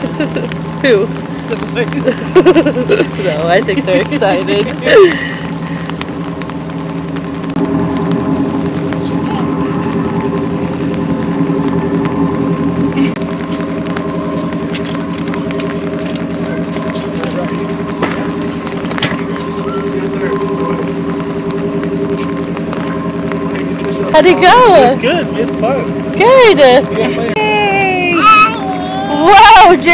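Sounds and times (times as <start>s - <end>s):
boat engine idling: 0.0s - 29.9s.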